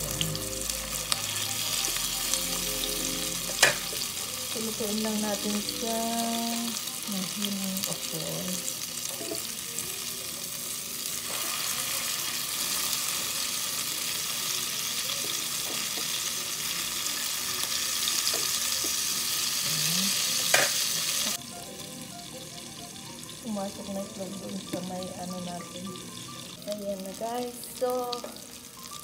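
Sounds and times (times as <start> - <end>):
omelettes sizzling in hot oil: 0.0 - 29.0.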